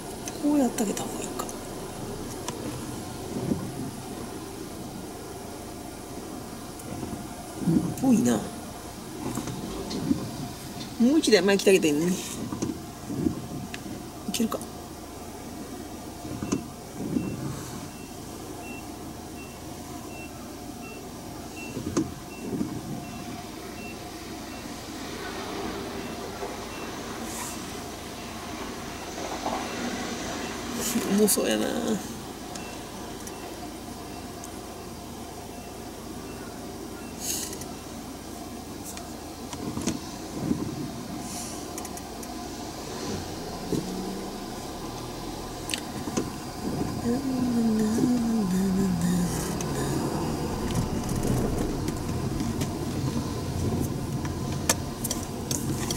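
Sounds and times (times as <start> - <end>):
low engine and road hum: 0.0 - 55.9
low traffic rumble: 0.0 - 55.9
vehicle warning beeper: 16.3 - 25.3, 25.9 - 28.4, 29.6 - 31.2, 32.5 - 38.0.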